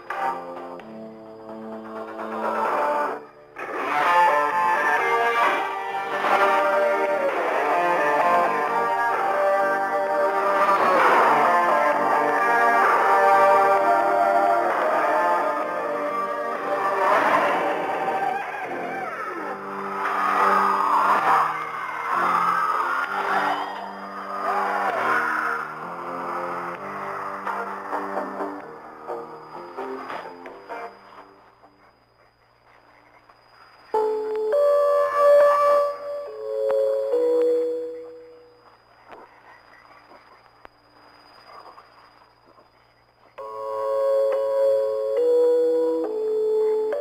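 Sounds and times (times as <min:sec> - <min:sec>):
music over shortwave radio: 0:00.0 - 0:47.0
radio static hiss: 0:25.6 - 0:34.5, 0:38.0 - 0:43.4.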